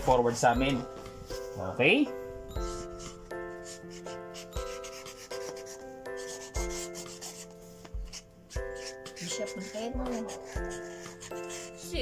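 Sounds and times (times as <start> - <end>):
background music with soft beat: 0.0 - 12.0
marker scratching on mat: 2.6 - 12.0.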